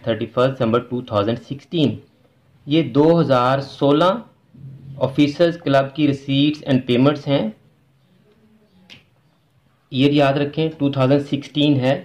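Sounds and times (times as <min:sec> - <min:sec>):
man speaking: 0:00.0 - 0:07.7, 0:09.9 - 0:12.0
faint low hum: 0:00.0 - 0:12.0.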